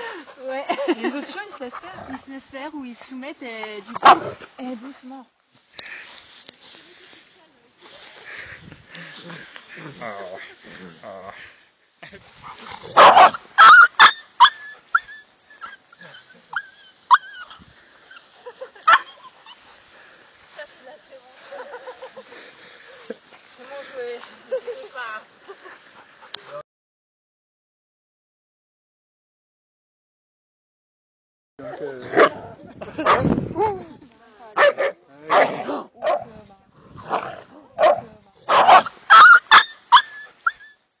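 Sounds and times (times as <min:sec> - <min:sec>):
dogs barking: 0:04.0 - 0:04.4, 0:12.8 - 0:17.5, 0:18.9 - 0:19.6, 0:33.0 - 0:33.3, 0:34.6 - 0:36.3, 0:37.8 - 0:40.6
puppy yelping: 0:13.0 - 0:17.6, 0:37.9 - 0:40.8.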